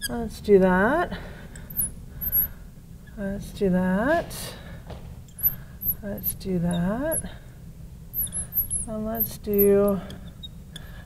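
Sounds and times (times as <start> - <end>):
marker tip squeaking on glass: 1.7 - 2.5, 5.3 - 7.2, 8.1 - 11.0
marker writing on glass: 8.2 - 9.3.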